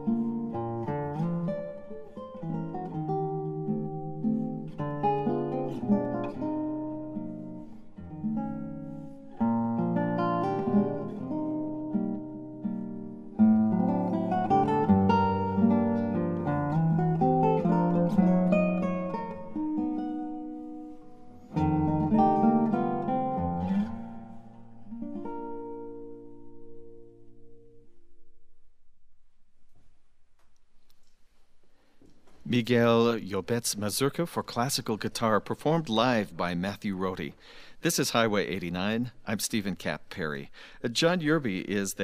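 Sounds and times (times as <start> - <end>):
solo classical guitar: 0.0 - 29.2, 31.2 - 42.0.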